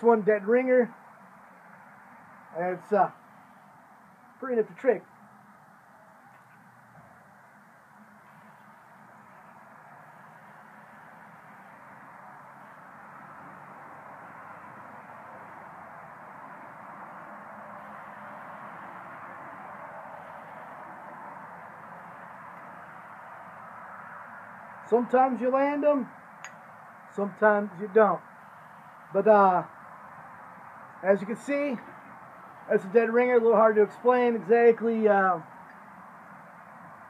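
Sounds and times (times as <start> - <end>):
outdoor background hush: 0.0 - 37.0.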